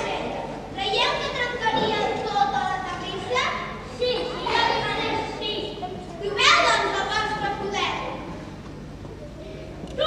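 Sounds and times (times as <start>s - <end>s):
children speaking in echoing hall: 0.0s - 10.0s.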